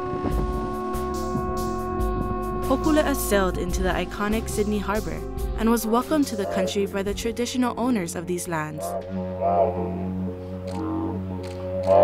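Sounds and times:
didgeridoo drone: 0:00.0 - 0:12.0.

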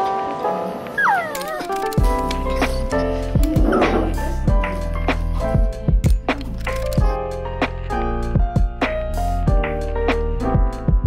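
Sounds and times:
background music: 0:00.0 - 0:11.0
dog whining: 0:01.0 - 0:04.3.

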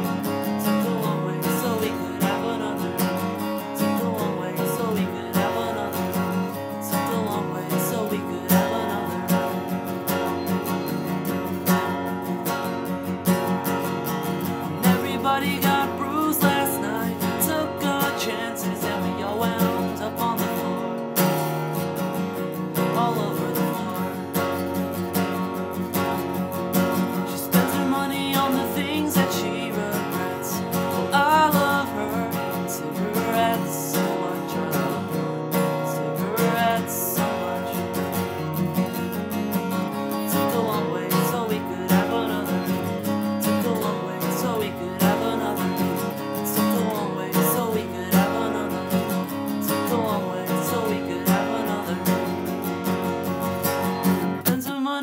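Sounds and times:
acoustic guitar strumming: 0:00.0 - 0:55.0.

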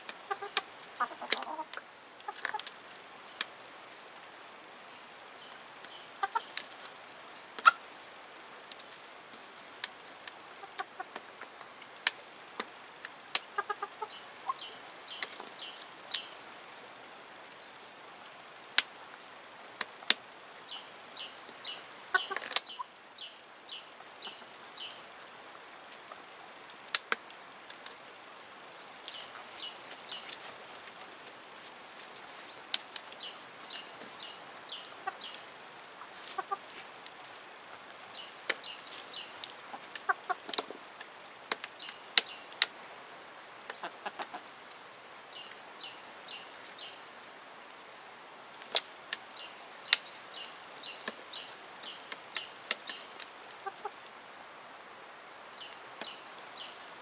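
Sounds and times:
chickens clucking: 0:00.1 - 0:02.8, 0:05.8 - 0:07.0, 0:07.6 - 0:07.8, 0:10.4 - 0:11.5, 0:13.3 - 0:16.6, 0:20.4 - 0:25.0, 0:28.9 - 0:40.9, 0:43.6 - 0:44.5, 0:48.6 - 0:54.1.

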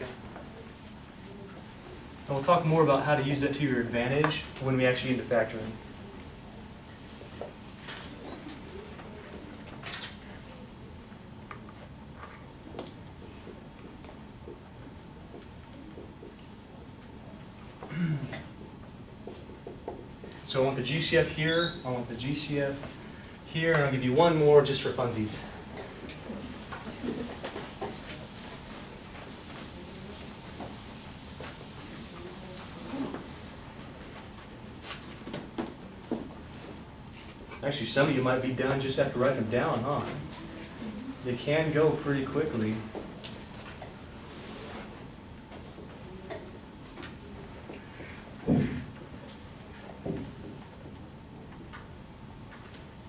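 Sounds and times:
faint classroom room tone: 0:00.0 - 0:53.0
marker writing on whiteboard: 0:26.4 - 0:33.7.

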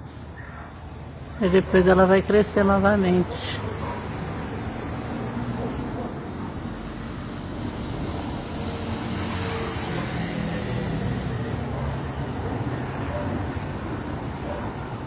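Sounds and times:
distant road traffic rumble: 0:00.0 - 0:15.0.

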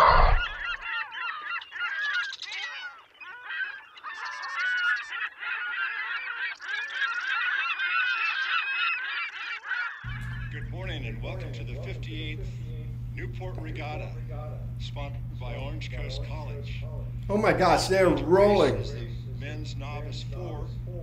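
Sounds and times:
steady low hum: 0:00.0 - 0:00.8, 0:10.1 - 0:21.0
flock of birds honking: 0:00.0 - 0:12.0.

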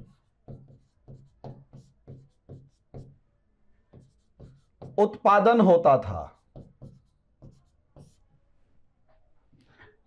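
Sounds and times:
marker scratching on whiteboard: 0:00.0 - 0:08.6.

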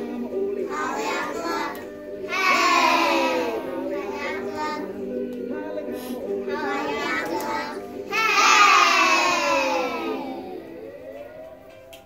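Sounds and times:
recorded song: 0:00.0 - 0:12.0
young children's voices: 0:06.6 - 0:10.7.

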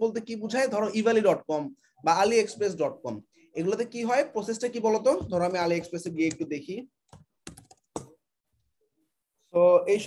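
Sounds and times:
computer keyboard typing: 0:05.1 - 0:08.2.

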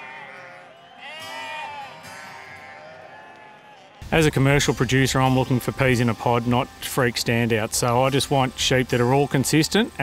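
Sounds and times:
sheep bleating: 0:00.0 - 0:04.1
background music: 0:04.0 - 0:10.0.

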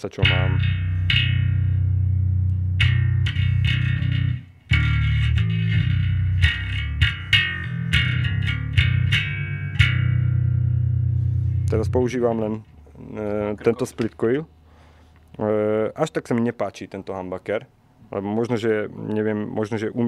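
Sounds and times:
electric bass riff: 0:00.0 - 0:13.7.

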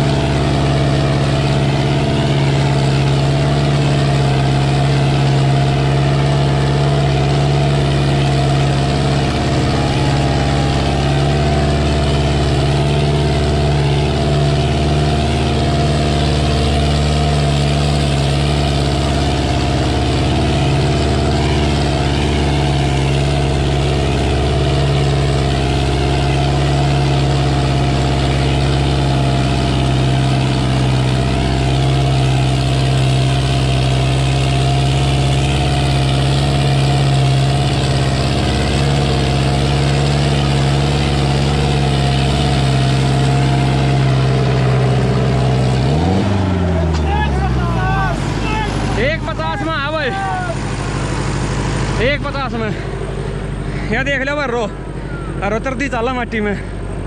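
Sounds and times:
tractor diesel engine under load: 0:00.0 - 0:57.0.

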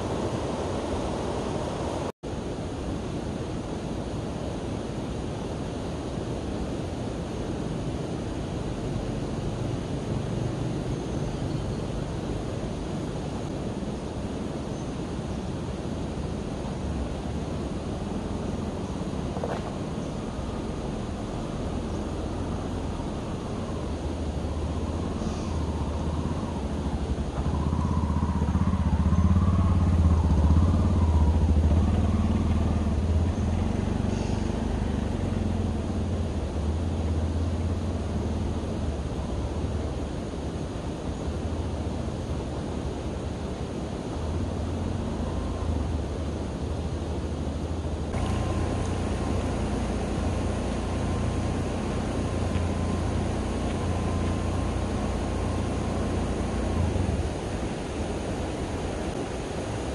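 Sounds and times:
shallow stream water rushing: 0:00.0 - 0:59.9
auto-rickshaw engine running: 0:16.9 - 0:40.2, 0:44.1 - 0:59.8.

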